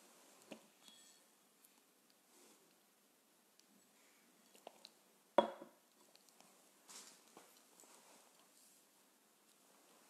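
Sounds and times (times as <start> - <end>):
glass clinking on hard surface: 0.8 - 1.4, 5.4 - 5.7
faint rustle: 6.3 - 10.0.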